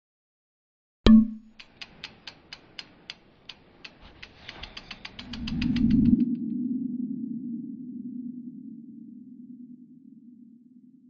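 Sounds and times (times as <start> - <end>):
clock-like ticks speeding up: 1.4 - 6.5.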